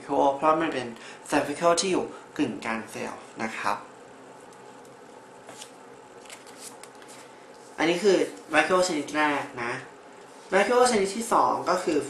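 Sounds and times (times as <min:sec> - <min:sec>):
man speaking: 0:07.8 - 0:09.9, 0:10.5 - 0:12.0.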